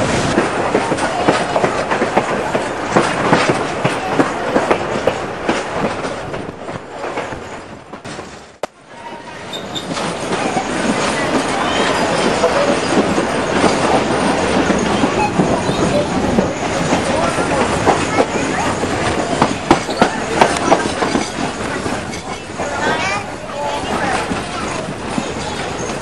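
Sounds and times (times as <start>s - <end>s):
train rumbling on track: 0.0s - 26.0s
sharp rail clicks: 0.1s - 8.8s, 9.5s - 26.0s
faint wheel squeal: 9.0s - 10.8s.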